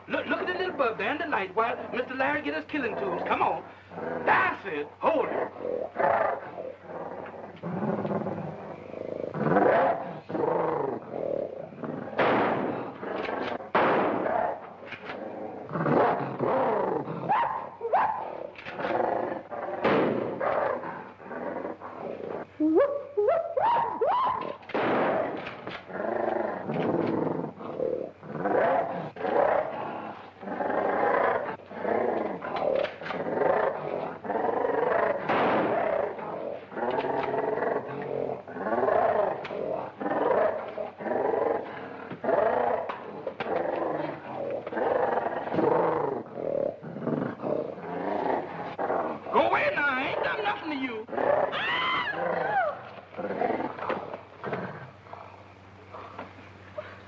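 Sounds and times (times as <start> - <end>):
gorilla roaring and growling: 0.0 - 55.4
high rising and falling cry: 22.6 - 24.7, 51.4 - 53.0.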